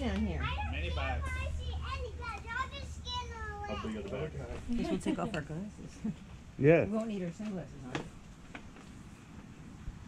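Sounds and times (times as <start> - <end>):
adult speaking: 3.7 - 5.4, 6.6 - 6.9.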